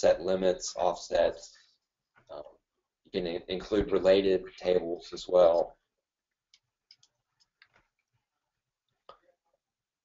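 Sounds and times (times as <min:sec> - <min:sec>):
computer mouse scrolling and clicking: 0:06.5 - 0:08.2.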